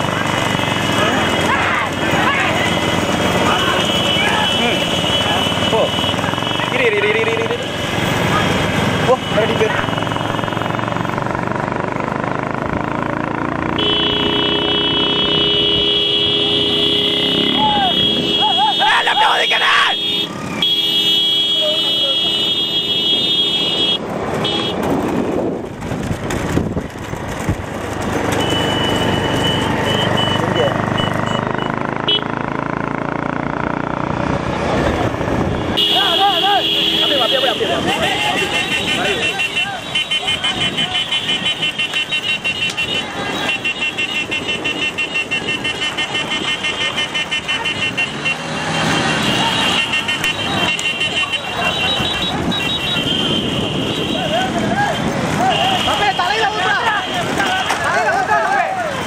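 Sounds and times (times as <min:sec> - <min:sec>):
motorcycle engines running: 0:00.0 - 0:59.0
men shouting: 0:00.9 - 0:09.8, 0:17.2 - 0:20.3, 0:35.8 - 0:41.4, 0:42.7 - 0:43.8, 0:47.4 - 0:52.4, 0:53.9 - 0:59.0
horn held steady: 0:13.8 - 0:19.1.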